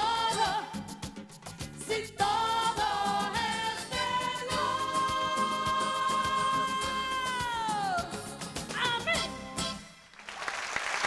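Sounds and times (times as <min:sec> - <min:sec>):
band playing: 0:01.7 - 0:10.0.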